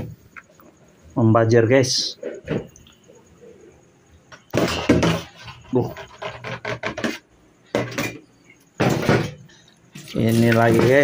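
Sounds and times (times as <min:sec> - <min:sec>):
plastic basins clattering in metal sink: 0:04.3 - 0:11.0.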